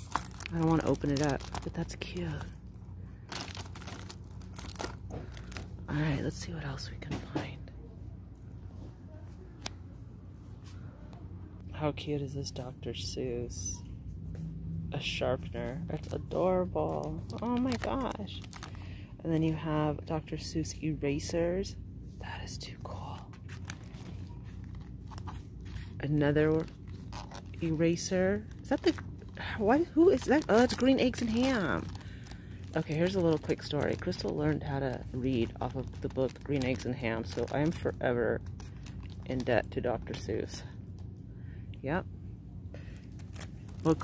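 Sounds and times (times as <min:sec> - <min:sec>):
plastic crinkles and clicks: 0:00.0 - 0:02.4, 0:16.9 - 0:18.8, 0:30.1 - 0:34.4, 0:35.3 - 0:39.5
plastic shrink-wrap crinkling: 0:00.0 - 0:06.2, 0:15.9 - 0:19.5, 0:23.4 - 0:41.1, 0:42.8 - 0:44.0
steady low hum: 0:00.0 - 0:44.0.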